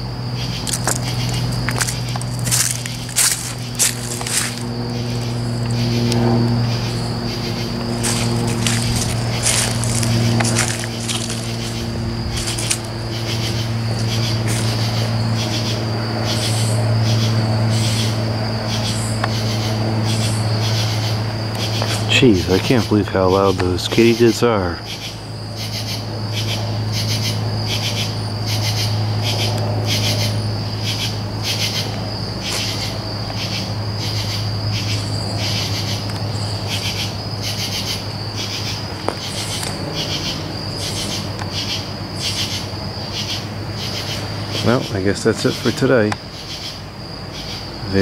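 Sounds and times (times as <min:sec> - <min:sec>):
insects high trill: 0:00.0 - 0:48.0
raspy insect calls: 0:00.0 - 0:48.0
steady low hum: 0:00.0 - 0:48.0.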